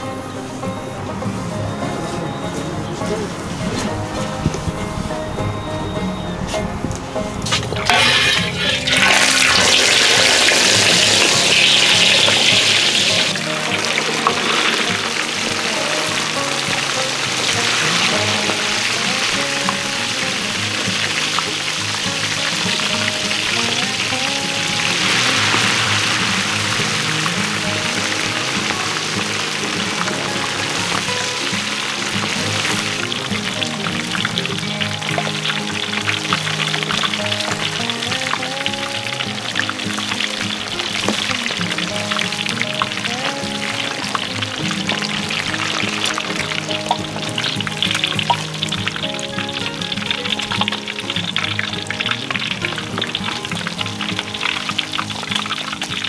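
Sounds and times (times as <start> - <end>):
background music with melody: 0.0 - 56.0
fish deep-frying in hot oil: 7.5 - 56.0.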